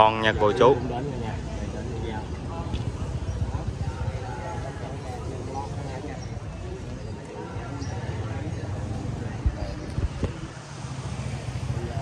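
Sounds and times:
motor vehicle engine humming: 0.7 - 12.0.

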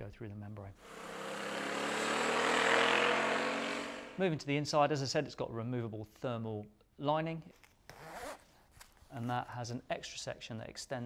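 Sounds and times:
motorcycle passing by: 0.8 - 4.2
road and wind noise: 0.9 - 4.2.

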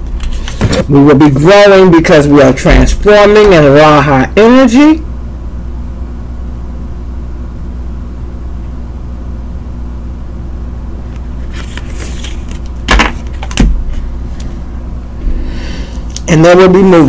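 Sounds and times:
steady low hum: 0.0 - 17.0
cards knocking on table: 12.9 - 13.8.

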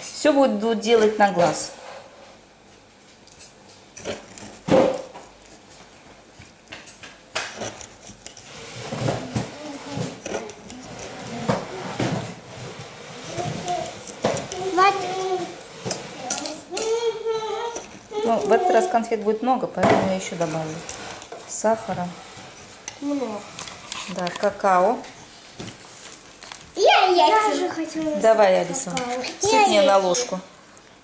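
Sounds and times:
person speaking: 13.3 - 20.9.

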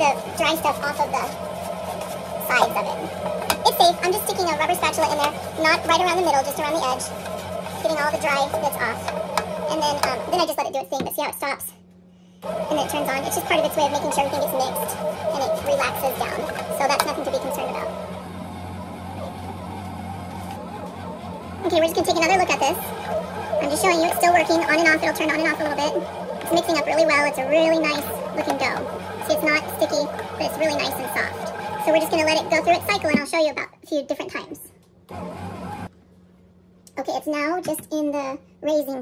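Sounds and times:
bread machine motor humming: 0.0 - 10.8, 12.4 - 33.3, 35.0 - 35.9.

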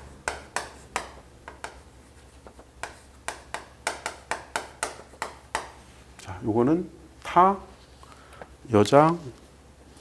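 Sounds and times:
chalk tapping on chalkboard: 0.0 - 5.8.

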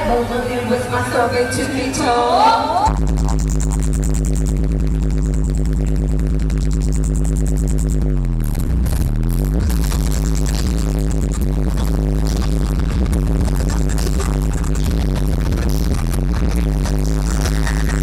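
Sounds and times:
loud electronic music: 0.0 - 18.0.

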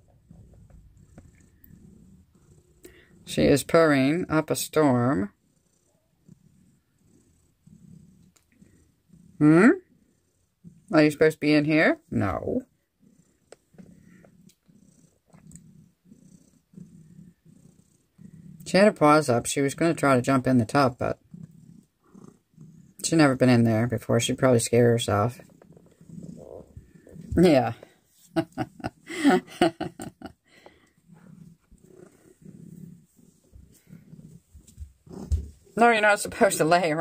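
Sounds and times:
cat purring: 0.0 - 37.0.

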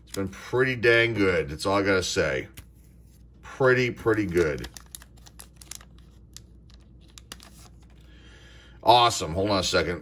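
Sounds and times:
wrapper crinkling: 3.7 - 8.1.

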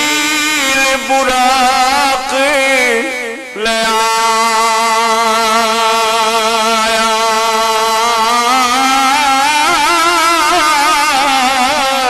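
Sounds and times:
man singing with vibrato: 0.0 - 12.0.

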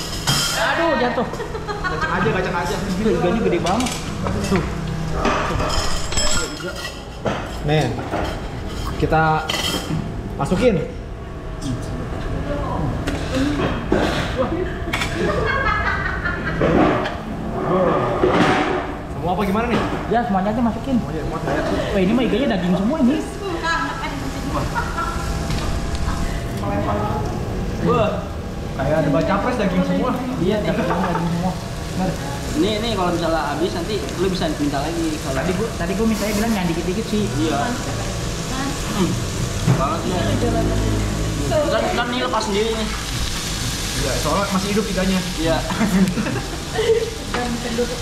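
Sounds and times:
tableware clinking: 3.6 - 10.0
indistinct voices: 36.8 - 43.2.

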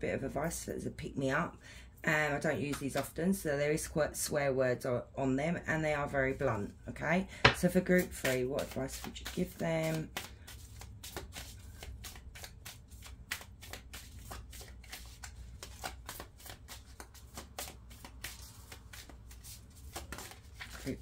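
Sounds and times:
cards being shuffled: 7.5 - 21.0.

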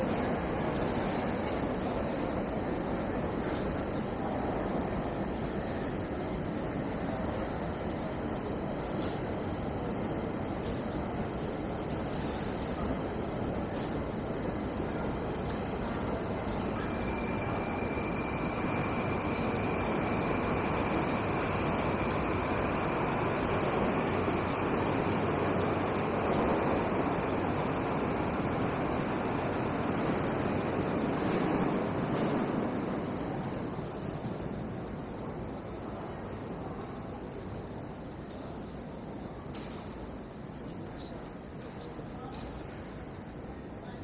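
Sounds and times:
steady high whine: 0.0 - 43.9
subway train rumbling: 0.0 - 44.0.

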